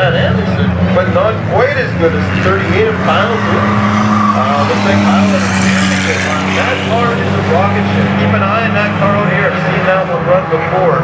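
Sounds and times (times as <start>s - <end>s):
announcer's voice over loudspeaker: 0.0s - 11.0s
racing car engines droning: 0.0s - 11.0s.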